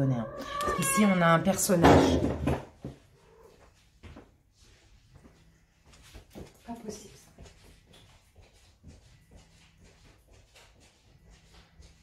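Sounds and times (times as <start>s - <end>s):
cat meowing: 0.0s - 1.4s, 3.2s - 3.6s
faint room noise: 0.0s - 12.0s.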